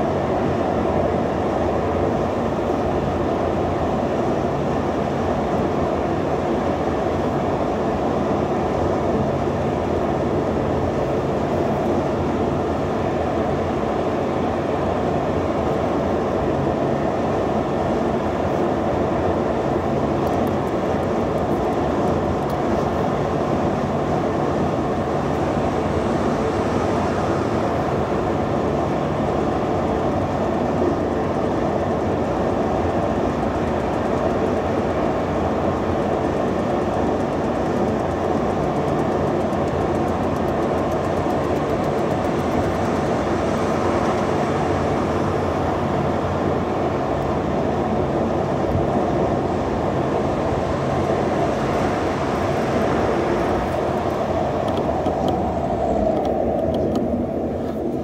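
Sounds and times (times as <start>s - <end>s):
road and tyre noise in car: 0.0s - 58.0s.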